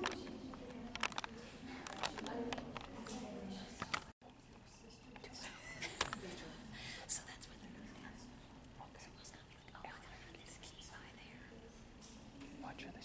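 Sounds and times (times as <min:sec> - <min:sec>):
people whispering: 0:00.0 - 0:13.0.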